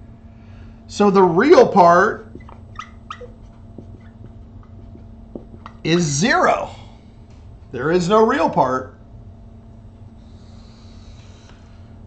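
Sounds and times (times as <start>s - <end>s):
low hum: 0.0s - 12.0s
marker squeaks: 1.7s - 6.2s
marker scratching on paper: 2.1s - 6.1s.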